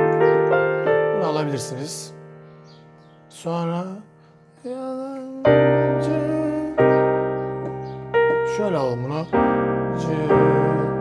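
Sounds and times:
piano chords on keyboard: 0:00.0 - 0:11.0.

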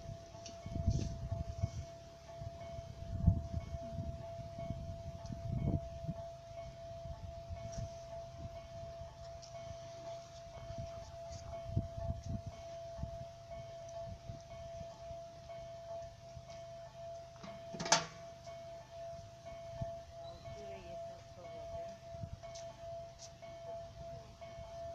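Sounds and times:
wind buffeting microphone: 0:00.0 - 0:09.9, 0:10.5 - 0:15.0, 0:21.7 - 0:22.7.

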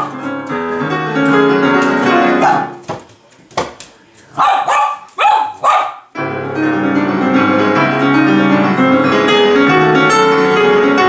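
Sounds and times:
digital piano playing: 0:00.0 - 0:02.9, 0:06.1 - 0:11.0
dog barking: 0:02.4 - 0:02.8, 0:04.4 - 0:06.1.

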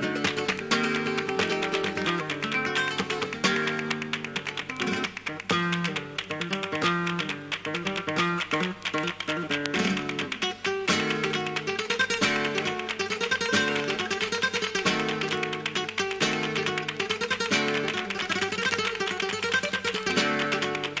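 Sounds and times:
flamenco guitar playing: 0:00.0 - 0:21.0.

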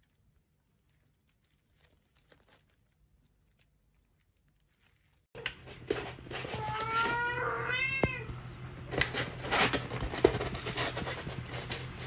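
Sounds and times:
cat meowing: 0:06.5 - 0:08.4.

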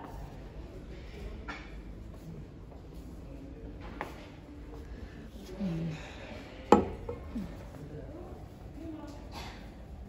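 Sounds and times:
glass set down on wooden table: 0:06.7 - 0:07.2.

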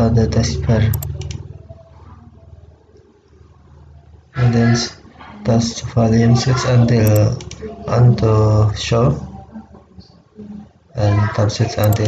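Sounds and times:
low steady hum: 0:00.0 - 0:10.8.

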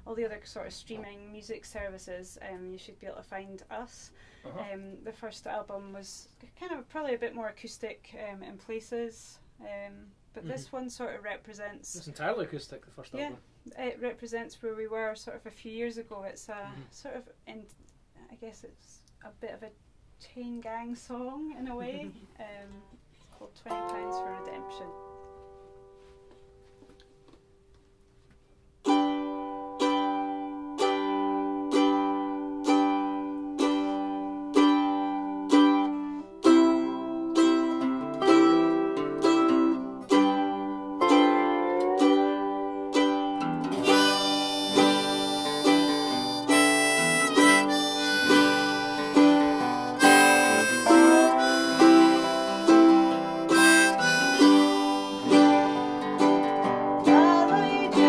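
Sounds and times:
slide guitar notes: 0:23.7 - 0:26.1, 0:28.9 - 0:58.0
acoustic string band: 0:28.9 - 0:58.0
plucked string repeated note: 0:41.0 - 0:57.2
harmonica: 0:43.7 - 0:58.0.

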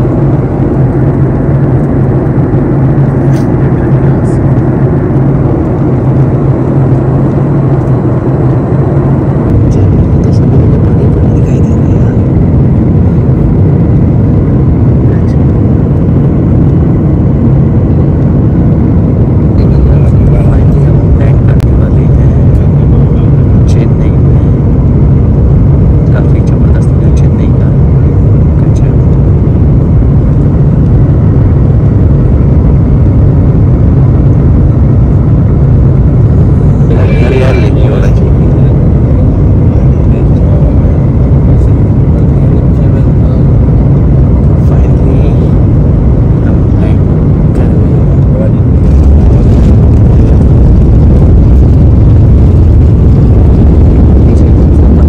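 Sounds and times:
jet engine rumble in cabin: 0:00.0 - 0:55.0.

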